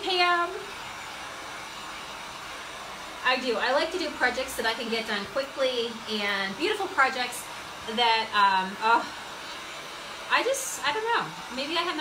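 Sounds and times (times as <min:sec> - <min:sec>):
hot-air dryer blowing: 0:00.0 - 0:12.0.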